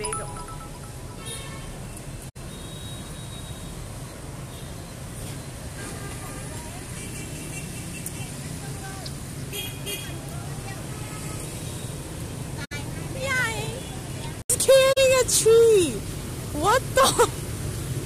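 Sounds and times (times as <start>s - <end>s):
horn beeps: 0.0s - 1.8s
motorbike and scooter engines: 3.2s - 18.0s.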